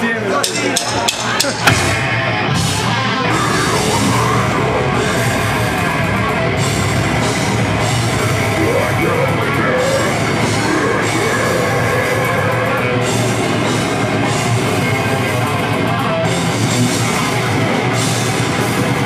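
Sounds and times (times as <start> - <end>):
metal band playing: 0.0 - 19.0
drum hits: 1.5 - 2.8.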